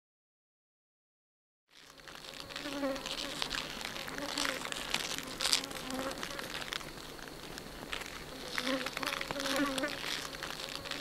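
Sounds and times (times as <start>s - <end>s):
insects buzzing: 1.7s - 11.0s
dense high hiss: 1.8s - 11.0s.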